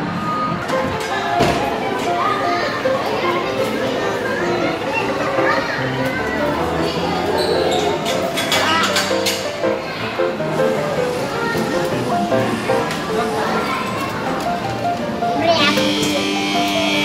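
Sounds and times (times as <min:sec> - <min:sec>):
children and adults talking: 0:00.0 - 0:17.0.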